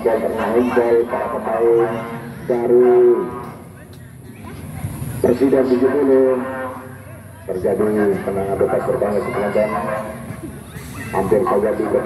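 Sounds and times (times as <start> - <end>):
open-air background noise: 0.0 - 12.0.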